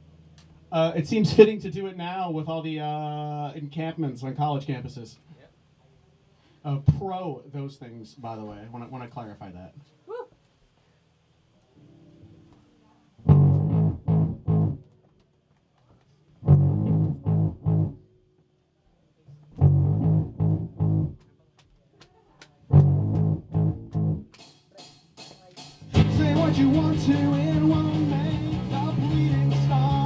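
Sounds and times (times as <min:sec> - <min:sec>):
electric guitar and bass chord stabs: 0:13.2 - 0:14.9, 0:16.4 - 0:18.1, 0:19.6 - 0:21.2, 0:22.7 - 0:24.3, 0:25.8 - 0:30.0.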